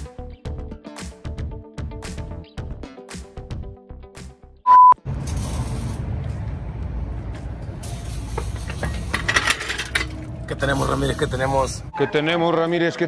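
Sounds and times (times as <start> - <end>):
background music: 0.0 - 4.7, 6.2 - 13.0
loud single-pitch beep: 4.7 - 5.0
metallic clinks and rattles: 8.5 - 10.2.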